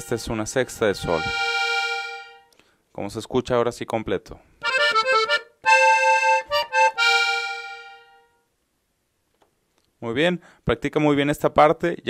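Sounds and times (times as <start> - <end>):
button accordion chords: 0.0 - 2.6, 4.6 - 8.3.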